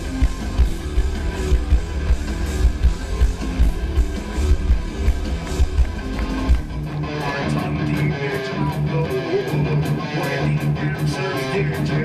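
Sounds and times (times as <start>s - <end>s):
drum high ticks: 0.0s - 8.7s
driving guitar riff: 0.0s - 12.0s
heavy metal band playing: 0.0s - 12.0s.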